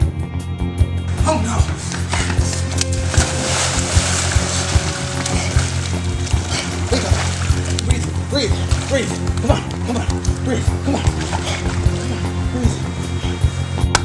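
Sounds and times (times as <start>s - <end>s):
background music: 0.0s - 14.0s
water splashing in pool: 1.7s - 13.1s.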